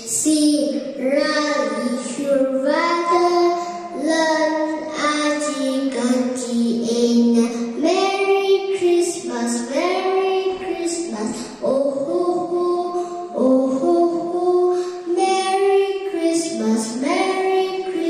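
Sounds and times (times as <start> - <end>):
girl singing into a microphone: 0.0 - 18.0.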